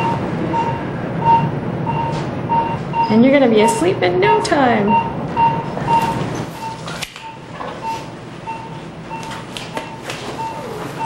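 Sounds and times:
pulse oximeter beeping: 0:04.9 - 0:11.0.

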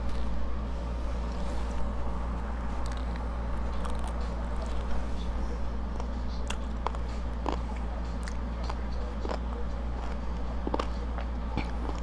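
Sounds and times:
low hum: 0:00.0 - 0:12.0
chewing crispy food: 0:01.1 - 0:12.0.

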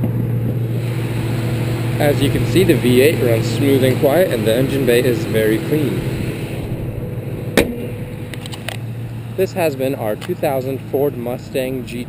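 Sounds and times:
car engine idling: 0:00.0 - 0:12.0
sharp thump: 0:07.5 - 0:08.1.

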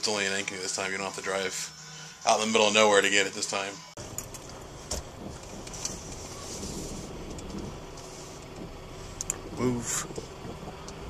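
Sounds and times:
car engine and road rumble: 0:03.9 - 0:11.0.

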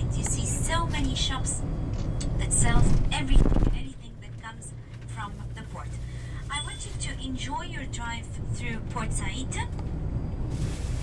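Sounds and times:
bus engine rumble and road noise: 0:00.0 - 0:11.0.

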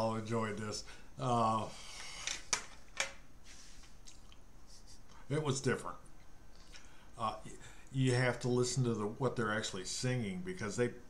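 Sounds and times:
faint mouth clicks: 0:04.0 - 0:04.4.

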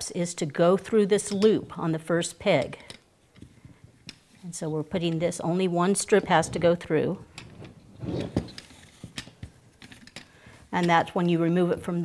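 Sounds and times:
fabric loops rustling: 0:03.2 - 0:12.0.

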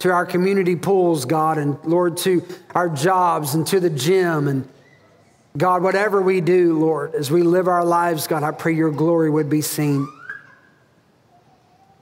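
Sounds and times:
man speaking in reverberant hall: 0:00.0 - 0:12.0.

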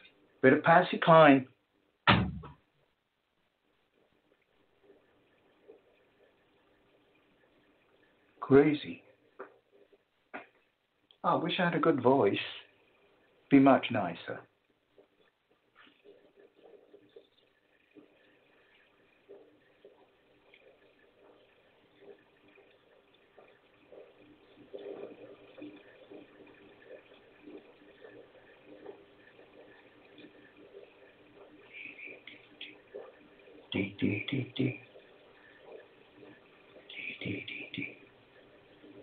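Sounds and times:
faint scattered sounds: 0:00.0 - 0:39.0.

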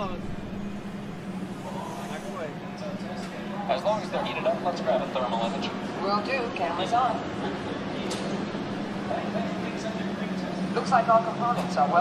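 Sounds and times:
ride vehicle humming: 0:00.0 - 0:12.0
people's voices: 0:01.3 - 0:12.0.

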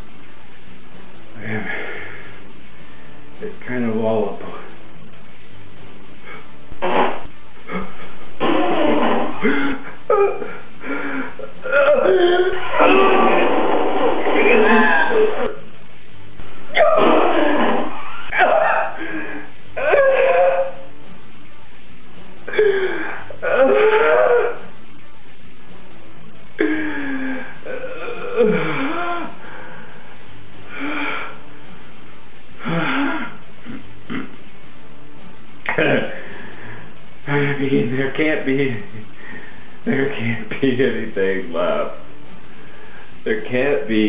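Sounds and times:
man moaning: 0:07.7 - 0:15.6, 0:16.7 - 0:20.8, 0:22.5 - 0:24.7, 0:26.6 - 0:29.4
man groaning: 0:11.3 - 0:15.6.

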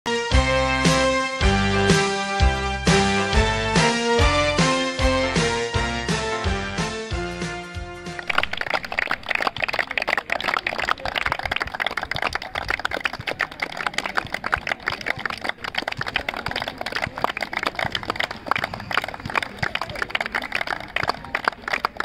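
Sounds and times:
people clapping: 0:08.1 - 0:22.0.

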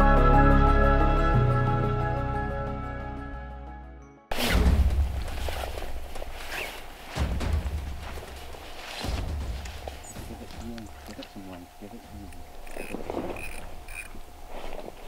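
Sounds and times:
background music: 0:00.0 - 0:13.0
rustling: 0:04.3 - 0:15.0
man talking: 0:10.0 - 0:12.4.

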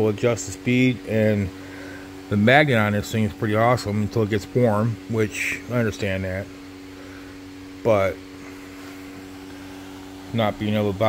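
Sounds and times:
steady mechanical hum: 0:00.0 - 0:11.0
person speaking: 0:02.3 - 0:06.5, 0:10.3 - 0:11.0.

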